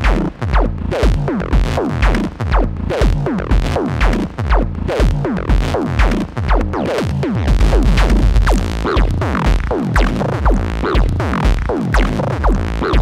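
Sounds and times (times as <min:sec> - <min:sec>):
kick drum beat: 0:00.0 - 0:13.0
synth bass: 0:00.0 - 0:13.0.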